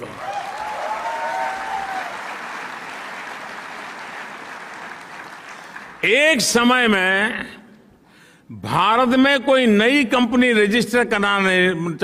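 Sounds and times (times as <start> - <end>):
large audience applauding: 0.0 - 6.0.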